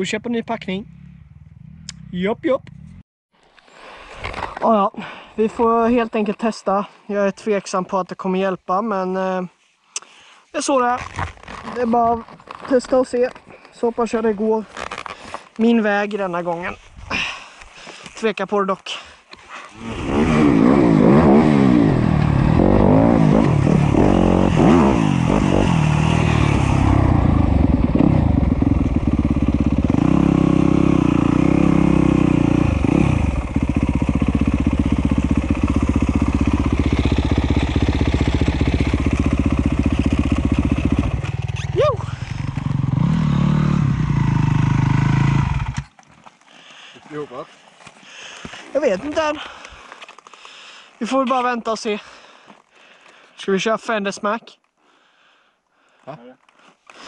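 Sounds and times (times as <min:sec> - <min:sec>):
person speaking: 0:10.5 - 0:11.0, 0:11.6 - 0:14.8, 0:15.5 - 0:16.9, 0:48.7 - 0:49.6
dirt bike engine running under load: 0:19.8 - 0:46.0.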